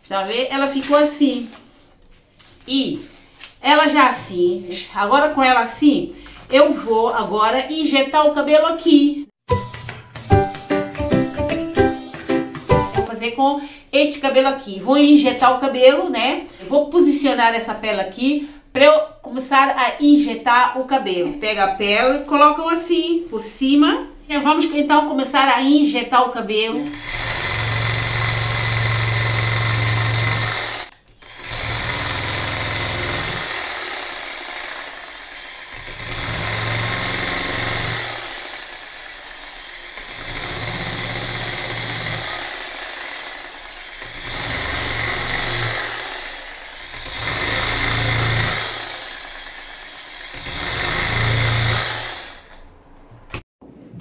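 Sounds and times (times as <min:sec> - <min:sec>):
buzzing hair-injection machine: 0:27.0 - 0:35.3.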